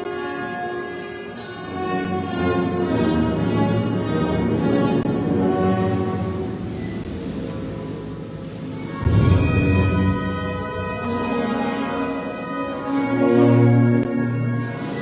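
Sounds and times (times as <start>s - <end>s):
loud drum stroke: 8.3s - 10.8s.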